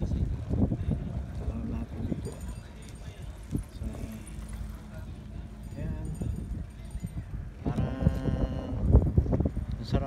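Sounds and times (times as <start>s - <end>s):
low rumble on microphone: 0.0s - 10.0s.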